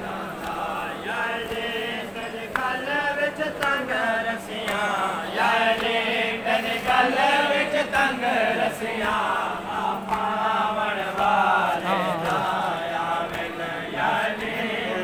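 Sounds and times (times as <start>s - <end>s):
men chanting together: 0.0s - 15.0s.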